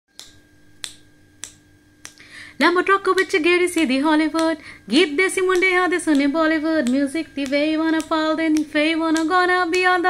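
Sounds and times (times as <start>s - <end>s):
fingers snapping: 0.1s - 2.3s, 3.2s - 4.6s, 5.4s - 9.9s.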